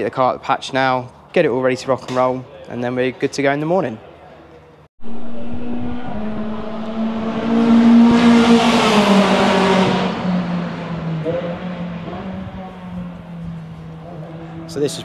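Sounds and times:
race car passing at speed: 5.0 - 15.0.

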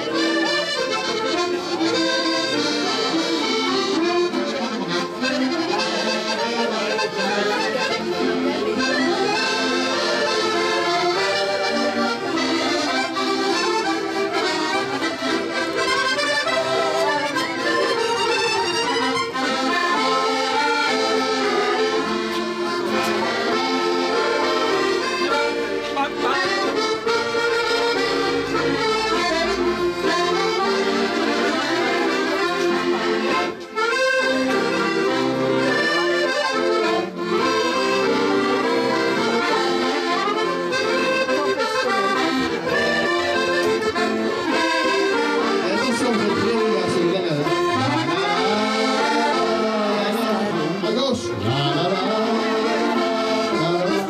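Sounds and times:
button accordions playing dance tune: 0.0 - 54.0.

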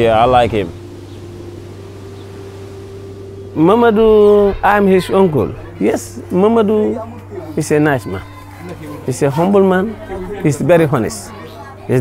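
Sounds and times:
steady low hum: 0.0 - 7.5
higher held tone: 0.0 - 11.9.

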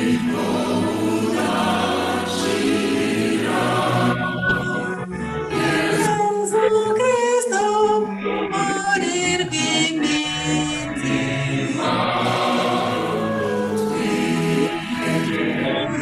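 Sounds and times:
group singing a hymn: 0.0 - 16.0.

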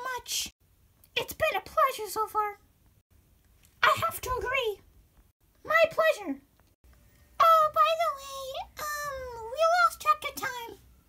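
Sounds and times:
child speaking in squeaky voice: 0.0 - 0.5, 1.2 - 2.6, 3.8 - 4.8, 5.6 - 6.4, 7.4 - 10.9.

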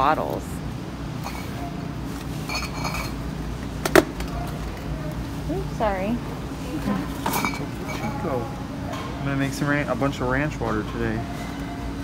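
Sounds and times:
low store hum: 0.0 - 12.0
glass bottles clinking: 1.2 - 1.6, 2.4 - 3.3, 7.2 - 8.3.

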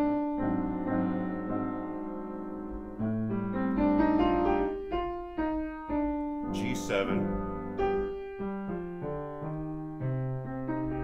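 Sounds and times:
grand piano playing: 0.0 - 11.0.

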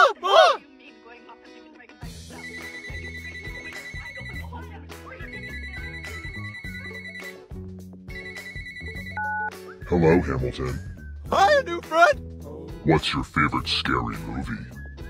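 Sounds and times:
smartphone ringing: 2.4 - 4.5, 5.2 - 7.4, 8.1 - 9.6.

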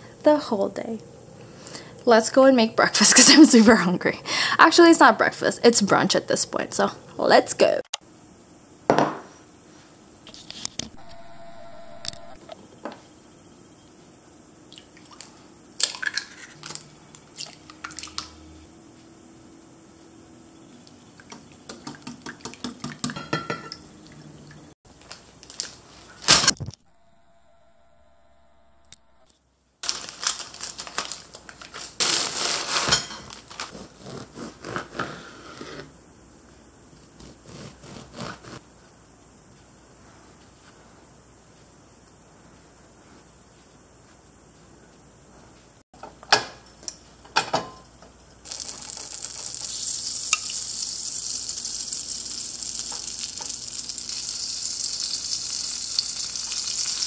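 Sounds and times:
dishes and utensils clattering: 22.9 - 23.8, 32.8 - 33.3.

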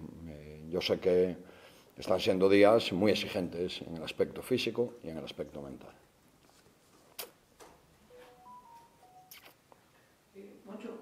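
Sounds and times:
short beeps rising and falling: 8.1 - 9.4.

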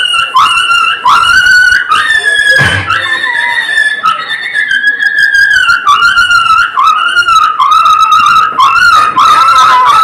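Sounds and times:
wind instrument melody: 0.0 - 10.0.

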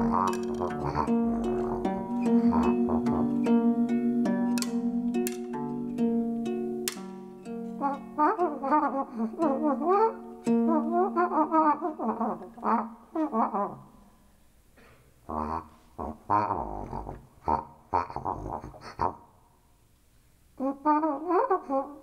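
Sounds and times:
plastic tubing wind instrument: 0.0 - 13.7.

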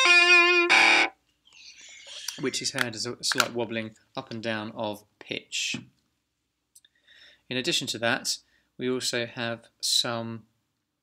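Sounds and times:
electric guitar notes with vibrato: 0.0 - 1.2.

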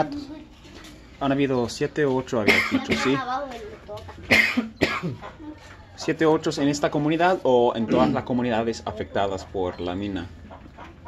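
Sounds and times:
person coughing: 2.4 - 3.2, 4.3 - 5.3, 7.9 - 8.2.

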